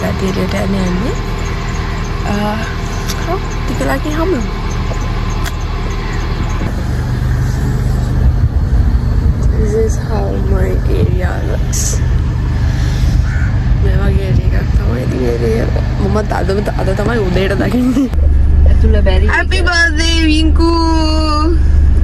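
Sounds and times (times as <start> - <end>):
woman's voice: 0.0 - 1.4, 2.2 - 4.5, 9.4 - 12.1, 13.8 - 21.8
wind buffeting microphone: 0.0 - 22.0.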